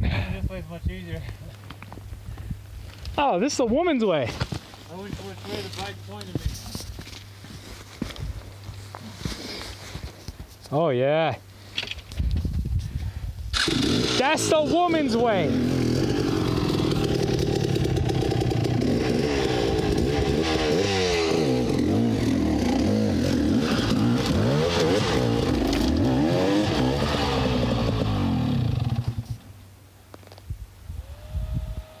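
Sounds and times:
dirt bike engine revving: 0:13.6 - 0:29.4.

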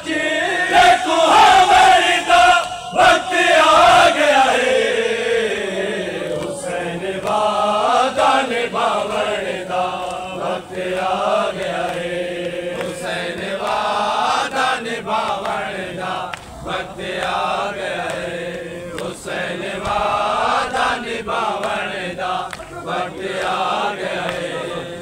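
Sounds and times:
men chanting a lament: 0:00.0 - 0:25.0.

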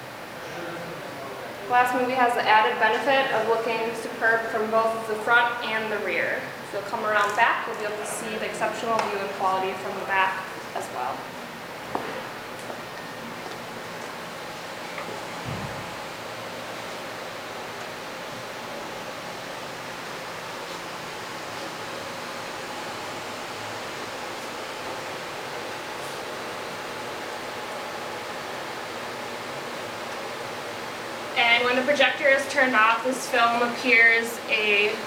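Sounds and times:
faint hum: 0:00.0 - 0:35.0.

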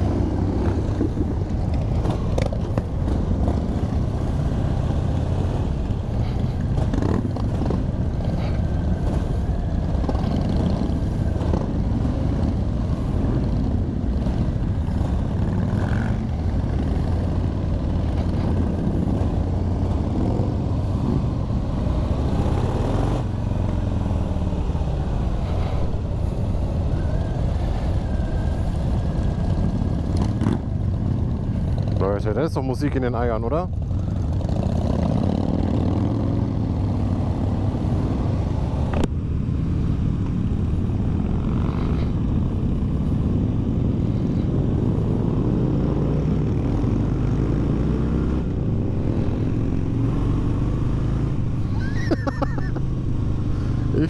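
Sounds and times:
motorcycles rumbling at low speed: 0:00.0 - 0:54.0.

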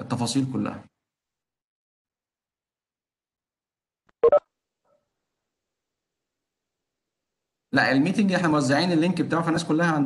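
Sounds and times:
electronic notification beeps: 0:04.2 - 0:04.4.

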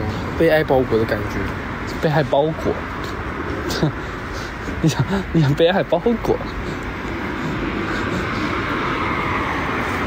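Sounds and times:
rushing road traffic noise: 0:00.0 - 0:10.0.

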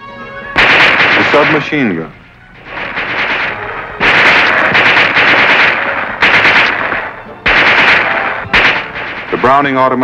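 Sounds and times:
submachine gun automatic bursts: 0:00.6 - 0:01.7, 0:02.6 - 0:09.9.

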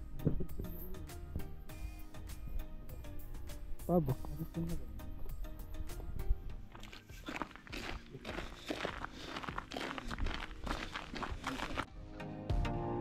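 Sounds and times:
music playing: 0:00.0 - 0:13.0
footsteps on snow: 0:06.2 - 0:11.9.

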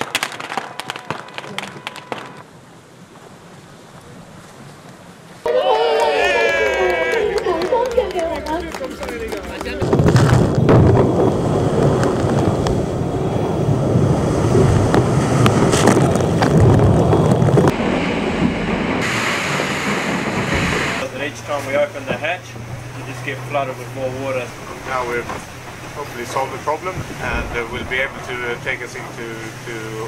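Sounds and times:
wind buffeting microphone: 0:06.1 - 0:30.0
steady low hum: 0:06.7 - 0:30.0
wind and spray rushing: 0:07.3 - 0:30.0.

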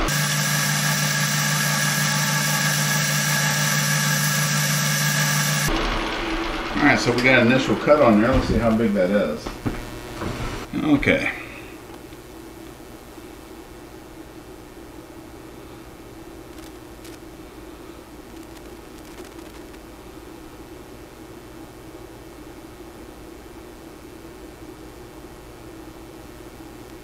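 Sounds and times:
low workshop hum: 0:00.0 - 0:27.0
micrometer clicks: 0:16.5 - 0:17.2, 0:18.3 - 0:19.8.

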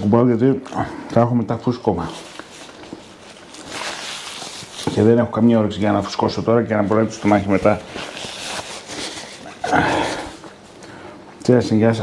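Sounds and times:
paper napkin rustling: 0:00.0 - 0:10.6.

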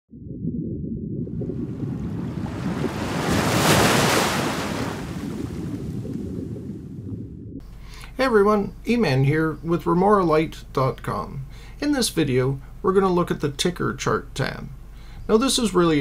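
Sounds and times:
deep underwater-style rumble: 0:00.1 - 0:03.6, 0:04.6 - 0:10.7.

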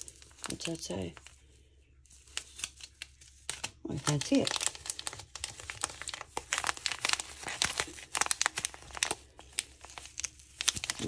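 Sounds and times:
foil packaging crinkling: 0:00.0 - 0:11.0.

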